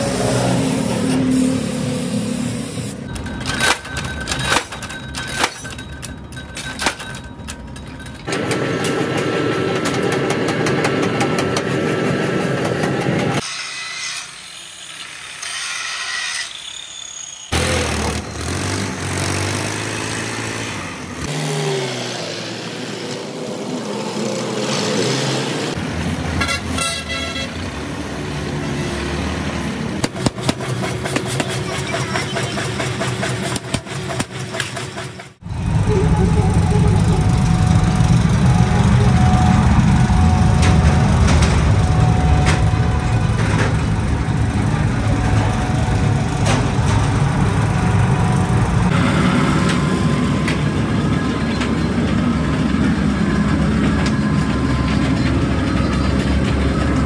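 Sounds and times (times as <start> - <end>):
tractor engine: 0.0 - 13.5, 14.6 - 57.0
road traffic: 0.0 - 57.0.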